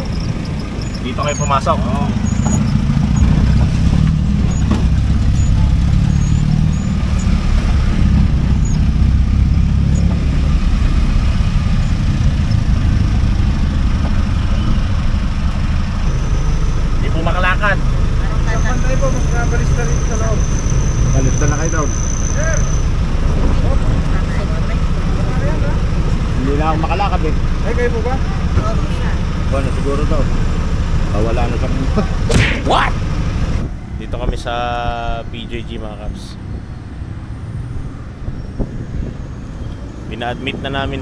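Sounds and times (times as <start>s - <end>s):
vehicle engine rumble: 0.0s - 41.0s.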